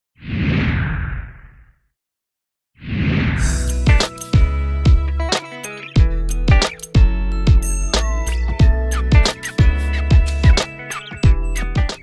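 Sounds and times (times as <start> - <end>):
whoosh: 2.8 - 3.9.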